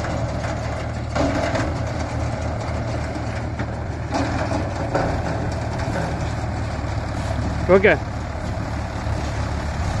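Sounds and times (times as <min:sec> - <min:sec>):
diesel tractor engines droning: 0:00.0 - 0:10.0.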